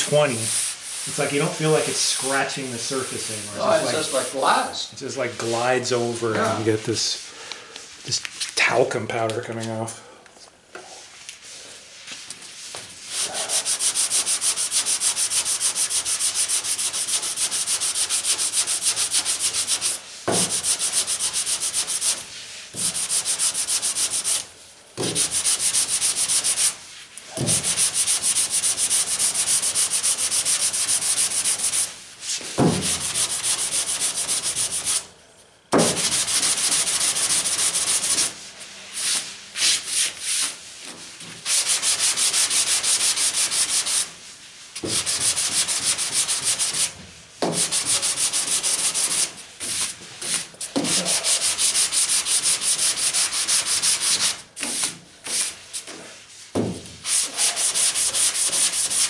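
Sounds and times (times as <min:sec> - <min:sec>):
sandpaper scratching back and forth: 0:00.0 - 0:04.6, 0:12.6 - 0:24.5, 0:25.1 - 0:26.8, 0:27.6 - 0:35.1, 0:35.9 - 0:40.7, 0:41.4 - 0:44.2, 0:44.8 - 0:47.0, 0:47.6 - 0:56.4, 0:57.0 - 0:59.0.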